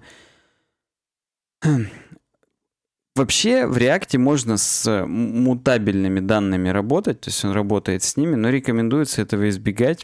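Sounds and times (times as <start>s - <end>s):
man speaking: 3.2s - 10.0s.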